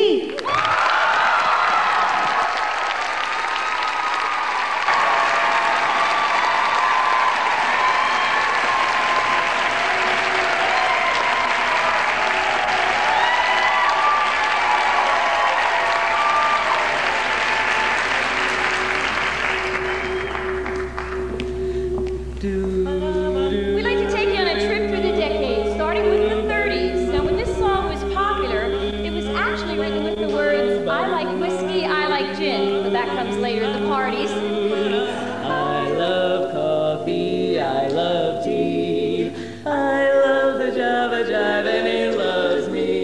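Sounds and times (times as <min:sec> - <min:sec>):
audience applauding: 0:00.3 - 0:21.5
voices cheering: 0:00.4 - 0:20.8.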